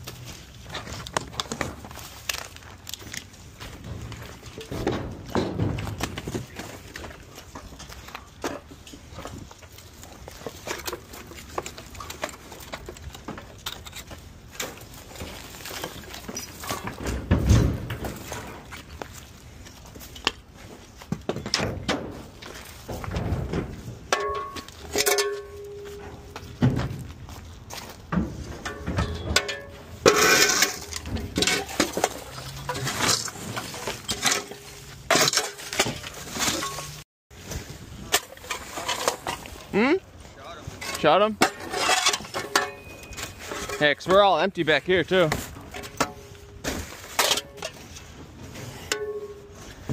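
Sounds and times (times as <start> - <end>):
debris clattering into trailer: 0.6 - 19.0, 21.3 - 37.0
shovel scraping: 28.6 - 39.8, 40.6 - 44.1.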